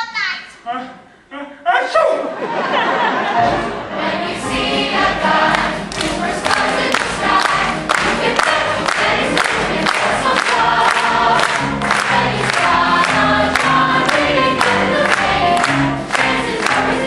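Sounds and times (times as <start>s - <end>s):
instrumental accompaniment: 3.0s - 17.0s.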